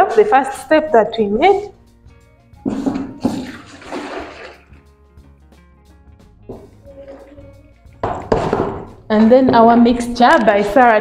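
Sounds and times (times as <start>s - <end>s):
liquid pouring and splashing: 2.8s - 4.9s, 6.6s - 7.6s.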